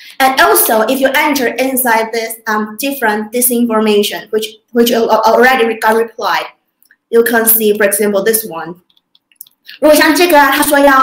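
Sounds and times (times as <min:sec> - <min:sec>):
person talking: 0:00.0 - 0:06.5, 0:07.1 - 0:11.0.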